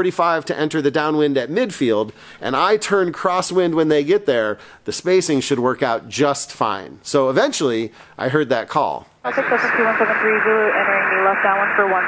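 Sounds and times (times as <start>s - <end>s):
radio static hiss: 9.3s - 12.0s.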